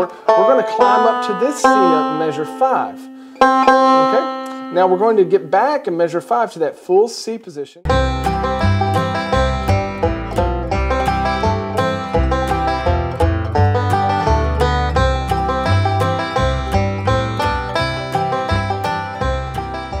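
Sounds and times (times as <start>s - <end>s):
low bass notes: 0.0s - 5.5s, 7.9s - 20.0s
fast-picked banjo: 0.0s - 5.8s, 7.9s - 20.0s.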